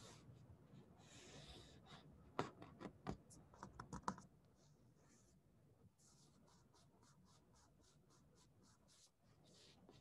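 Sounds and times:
faint keyboard typing: 2.4 - 4.3.

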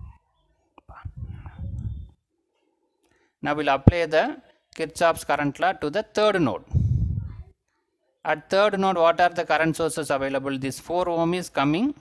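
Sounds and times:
breathy voice close to microphone: 0.8 - 2.2, 6.6 - 7.5.

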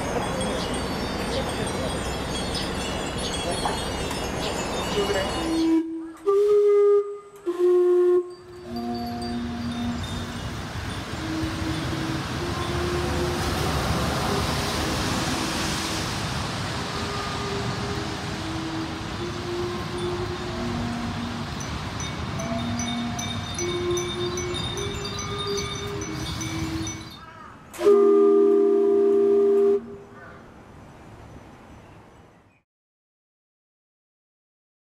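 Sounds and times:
glass wind chimes tinkling: 0.0 - 5.8, 8.2 - 13.9, 18.8 - 27.5
steam whistles playing melody: 4.2 - 15.6, 16.8 - 30.0
hiss of steam: 10.1 - 20.6.

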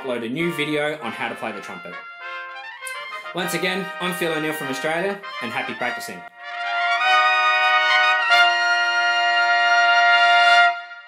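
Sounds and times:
trumpet holding long note: 0.0 - 11.0.

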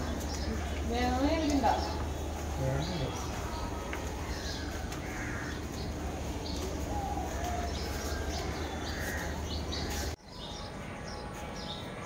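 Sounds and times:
birds cawing: 0.0 - 10.2.

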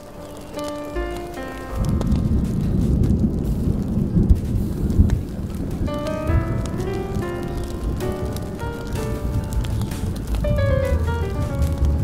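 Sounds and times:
smooth jazz music: 0.0 - 2.6, 5.8 - 12.0
deep thunder rumbling: 0.0 - 12.0
steady rain: 0.0 - 12.0.

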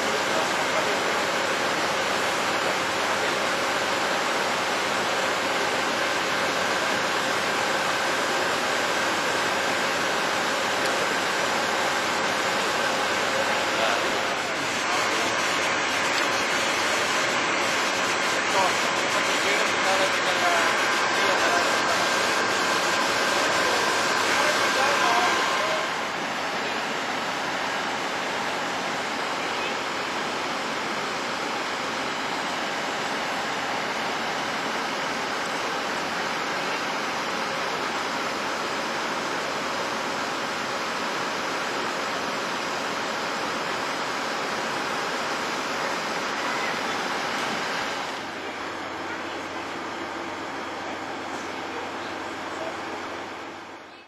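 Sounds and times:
voices: 0.0 - 39.8, 44.8 - 54.0
fire hoses rushing: 0.0 - 53.9.

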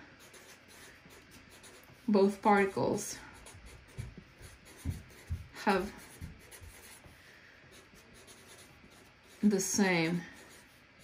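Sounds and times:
marker scratching on paper: 0.2 - 10.9
soft low thumps: 3.6 - 7.2.

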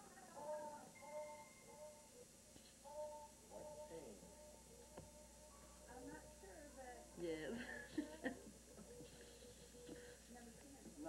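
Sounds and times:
faint voice: 0.0 - 2.2, 2.8 - 11.0.

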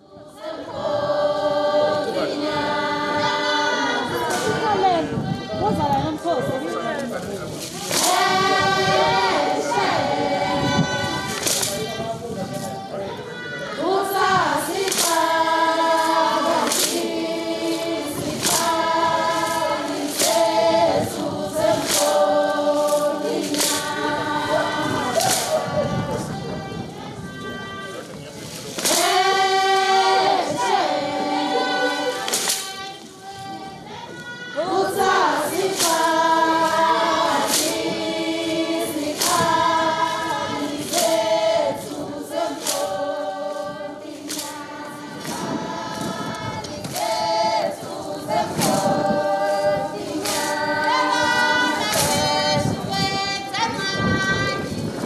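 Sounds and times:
choir singing: 0.0 - 55.0.

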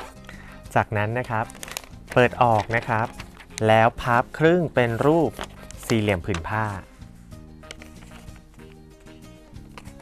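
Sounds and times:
background music: 0.0 - 10.0
person speaking: 0.8 - 7.0
paper crinkling while folded: 1.2 - 6.8, 7.7 - 8.8.

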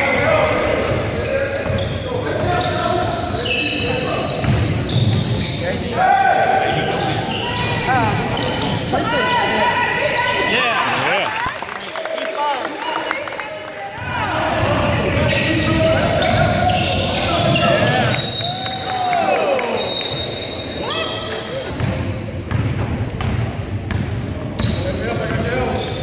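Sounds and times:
sneakers squeaking: 0.0 - 11.0, 14.0 - 18.9, 19.6 - 26.0.

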